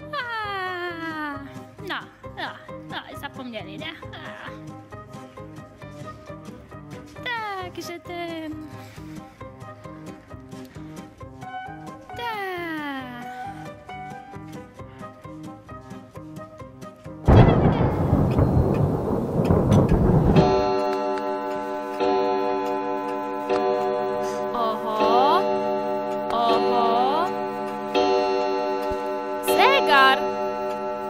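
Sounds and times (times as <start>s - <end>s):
playful background music: 0.0s - 20.0s, 20.7s - 31.0s
loud rumbling crash: 17.3s - 21.2s
sustained bell ringing: 20.5s - 31.0s.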